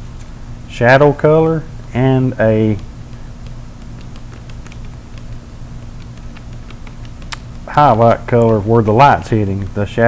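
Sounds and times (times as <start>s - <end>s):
steady low hum: 0.0s - 10.0s
palette knife clicks and taps: 2.8s - 7.6s.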